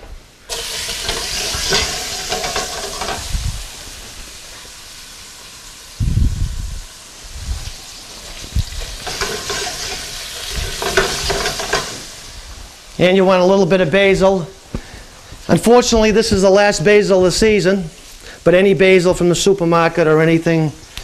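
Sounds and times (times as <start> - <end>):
tomatoes sizzling in oil: 0.4 - 13.0
pan knocking on stove grate: 0.5 - 3.3, 9.0 - 12.1.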